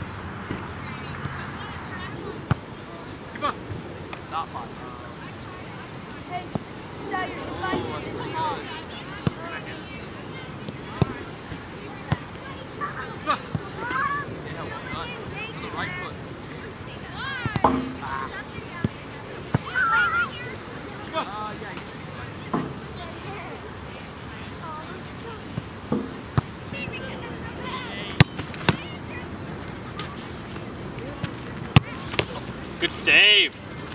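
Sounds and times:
faint voices: 0.0s - 33.9s
soccer ball thuds: 28.1s - 28.9s.

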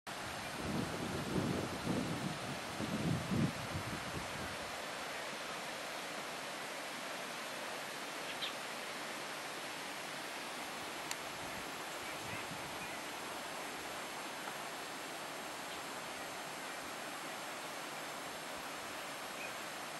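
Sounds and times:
steady outdoor hiss: 0.1s - 19.9s.

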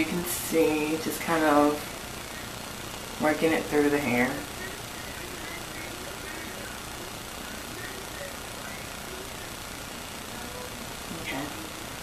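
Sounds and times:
microphone hiss: 0.0s - 12.0s
faint indistinct speech: 3.8s - 12.0s.

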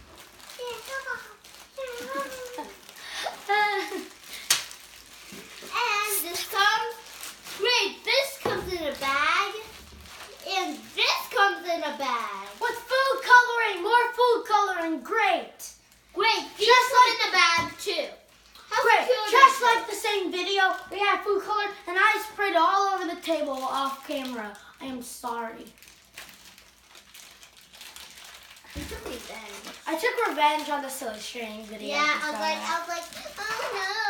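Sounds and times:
girl's high-pitched voice: 0.5s - 4.2s, 5.7s - 25.8s, 28.7s - 34.0s.

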